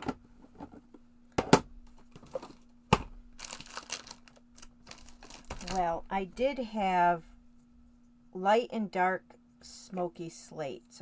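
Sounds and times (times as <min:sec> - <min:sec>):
rustling and crinkling: 0:01.9 - 0:02.8, 0:03.4 - 0:06.0.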